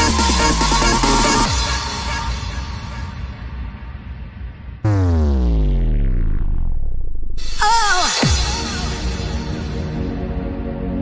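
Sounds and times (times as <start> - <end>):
house dance music: 0.0 - 2.0
synth note sliding down into bass: 4.8 - 7.6.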